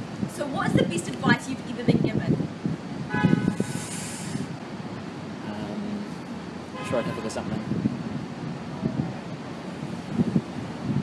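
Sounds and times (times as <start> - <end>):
traffic rumble: 0.0 - 11.0
brief hiss: 3.6 - 4.5.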